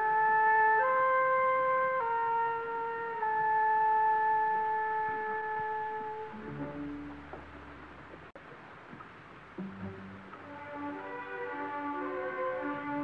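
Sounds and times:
wind instruments sustained chords: 0.0s - 8.3s, 9.5s - 13.0s.

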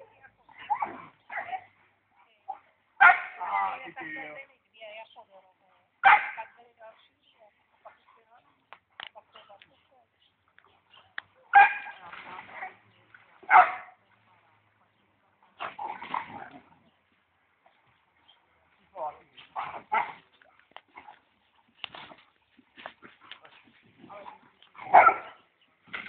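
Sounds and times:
dog barking and whining: 13.5s - 14.0s, 24.8s - 25.4s.

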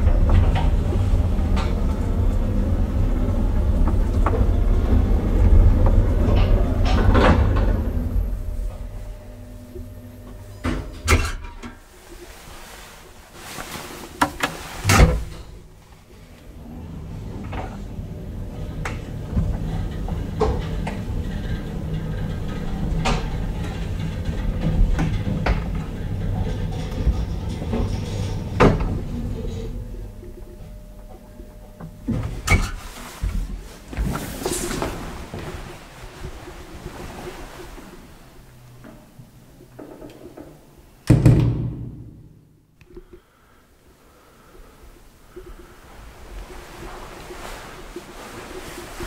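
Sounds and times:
elevator car deep rumble: 0.0s - 42.3s
elevator clicks and knocks: 39.6s - 42.2s.

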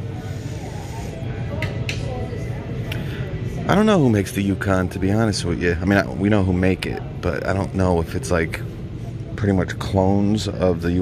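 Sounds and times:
store hum: 0.0s - 11.0s.

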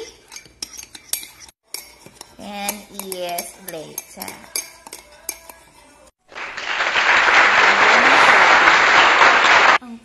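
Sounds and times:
metal spoon scraping a ceramic mug: 0.0s - 6.1s.

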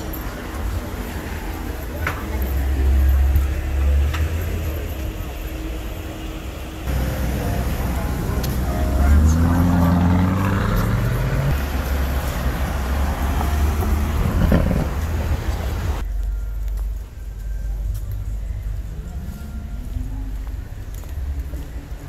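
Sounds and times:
car engine accelerating: 0.0s - 16.1s
street traffic rumble: 0.0s - 22.0s.

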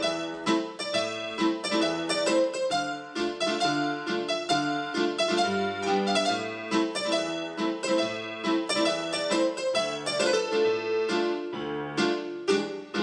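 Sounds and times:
solo piano playing: 0.0s - 13.0s.

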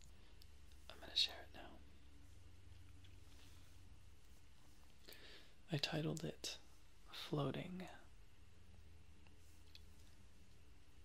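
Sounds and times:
soft whispered voice: 0.0s - 5.0s, 5.6s - 8.2s
low steady hum: 0.0s - 11.0s.

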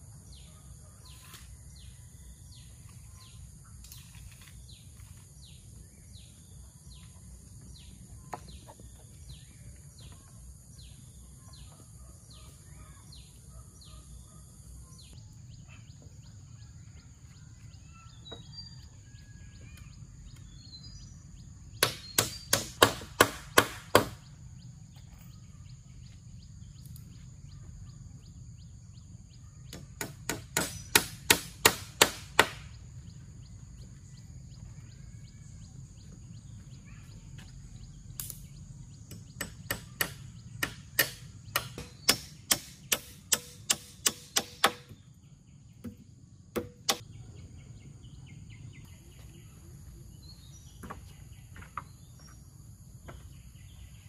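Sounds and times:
birds chirping: 0.0s - 54.0s.

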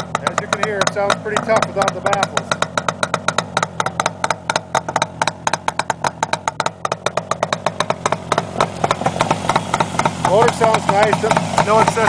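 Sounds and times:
two-stroke motorcycle engine idling: 0.0s - 12.0s.

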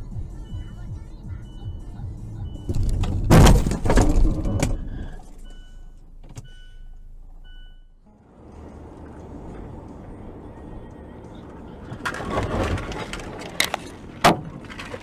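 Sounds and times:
engine and road rumble: 0.0s - 15.0s
car crash collision: 2.8s - 4.8s.

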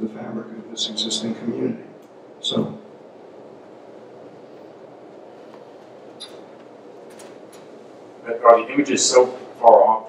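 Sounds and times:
steady room hiss: 0.0s - 10.0s.

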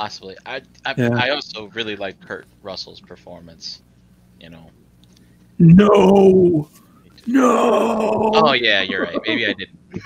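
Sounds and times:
man saying no in protest: 1.0s - 1.4s, 5.6s - 8.8s.

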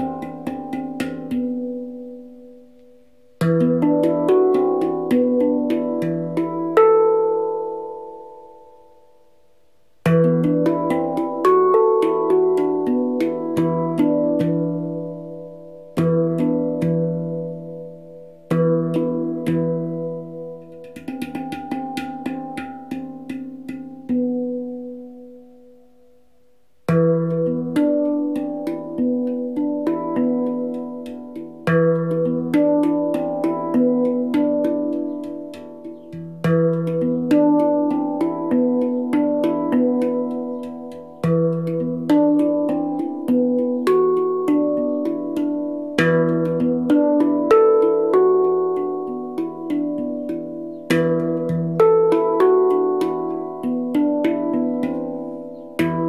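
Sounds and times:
handpan notes ringing: 0.0s - 25.8s, 26.8s - 56.0s.

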